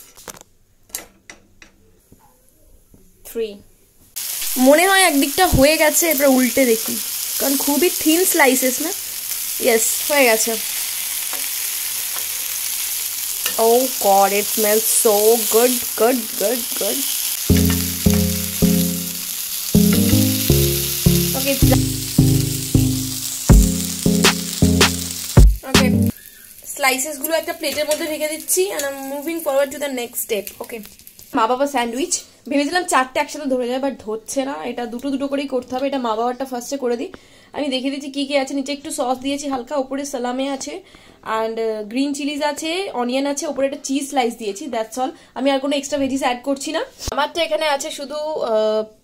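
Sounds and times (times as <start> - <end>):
meat slices sizzling on a grill pan: 4.2 - 31.4
utensils tapping a grill pan: 17.5 - 19.3
background music of short struck notes: 17.5 - 26.1.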